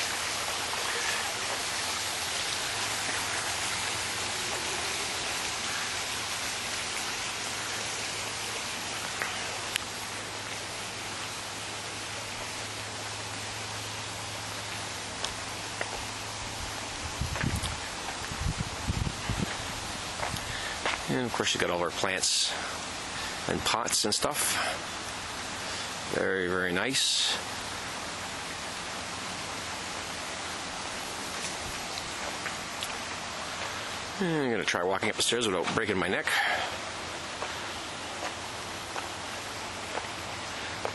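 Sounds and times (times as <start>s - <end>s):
running water rushing: 0.0s - 40.9s.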